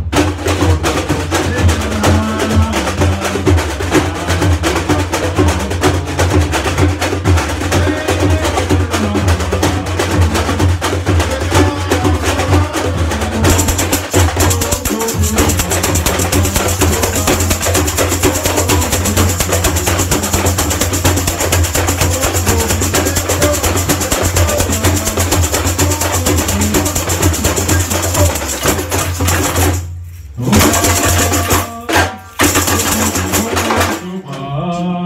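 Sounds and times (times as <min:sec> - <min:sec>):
drums: 0:00.0 - 0:34.6
metal shakers rattling: 0:13.4 - 0:34.1.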